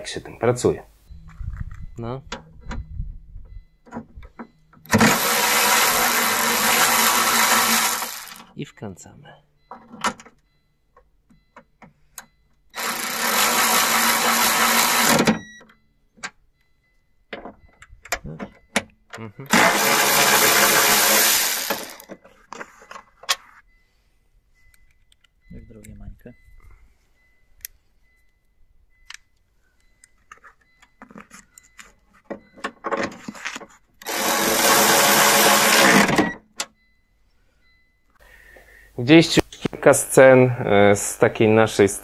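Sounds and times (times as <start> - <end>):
electric ratchet whirring: 4.9 - 8.5, 12.8 - 15.4, 19.5 - 22.2, 34.0 - 36.3.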